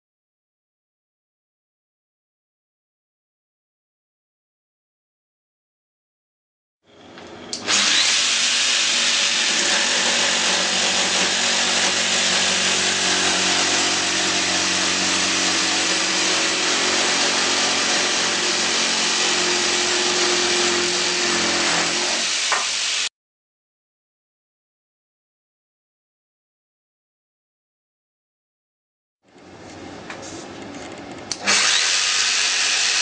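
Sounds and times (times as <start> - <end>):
jigsaw sawing wood: 7.6 - 23.1, 31.4 - 33.0.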